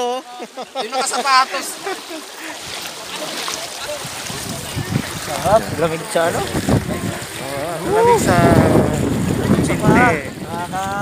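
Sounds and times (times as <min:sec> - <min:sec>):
people wading through water: 0:00.0 - 0:11.0
voices calling out: 0:00.0 - 0:11.0
wind on microphone: 0:03.8 - 0:11.0.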